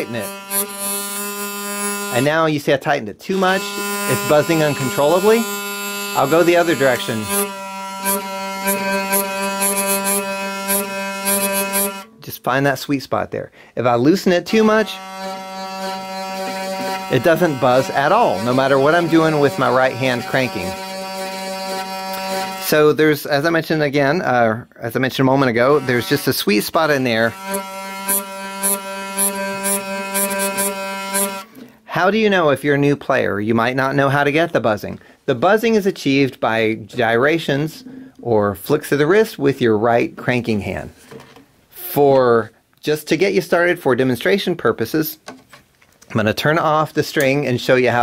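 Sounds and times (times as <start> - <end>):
hurdy-gurdy string droning: 0.0 - 2.4, 3.3 - 12.2, 14.4 - 22.8, 25.4 - 31.7
short buzzes: 0.0 - 2.4, 3.3 - 12.2, 14.5 - 22.8, 25.6 - 31.7.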